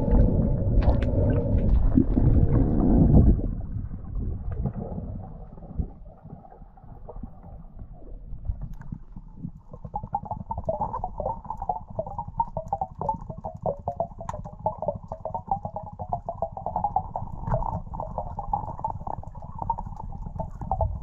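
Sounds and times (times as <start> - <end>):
low rumble: 0.0 - 9.7
underwater gurgling and crackling: 0.0 - 21.0.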